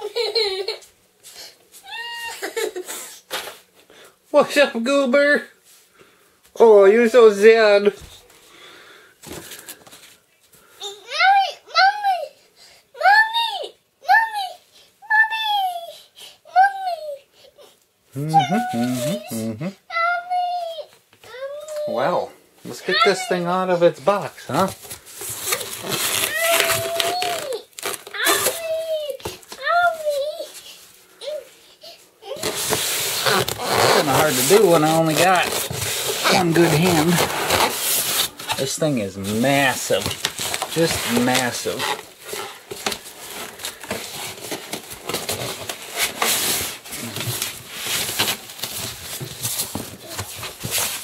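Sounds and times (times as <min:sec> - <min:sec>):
child crying out: 0:01.8 - 0:02.8, 0:18.2 - 0:20.5, 0:26.2 - 0:30.4
cardboard and plastic rustling: 0:09.2 - 0:10.6, 0:22.7 - 0:31.6, 0:32.2 - 0:51.0
bubble wrap crinkling: 0:24.4 - 0:30.8, 0:32.2 - 0:51.0.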